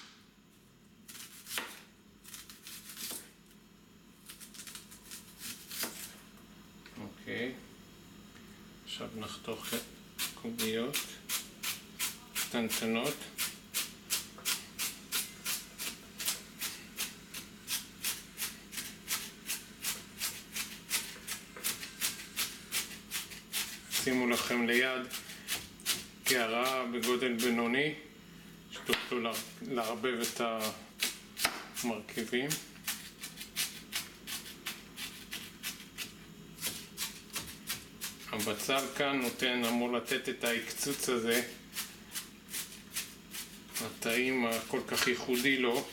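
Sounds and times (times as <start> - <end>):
knife chopping onion on board: 1.1 - 3.3, 5.4 - 6.1, 10.2 - 27.6, 28.9 - 31.9, 32.5 - 45.9
knife chopping on plastic board: 31.0 - 31.7.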